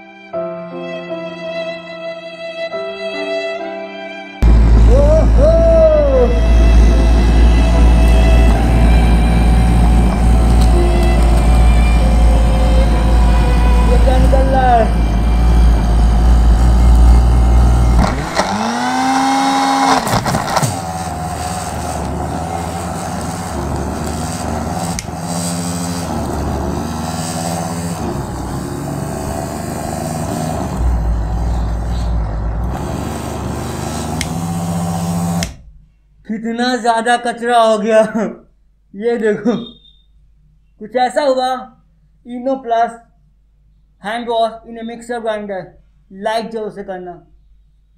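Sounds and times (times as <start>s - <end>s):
background music: 0.0s - 16.6s
sweeping rising sound: 4.4s - 34.6s
electric mixer grinder running: 6.1s - 35.6s.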